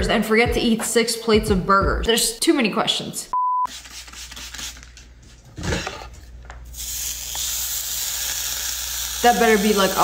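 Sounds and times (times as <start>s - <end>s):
steam hissing from flat iron: 6.8s - 10.0s.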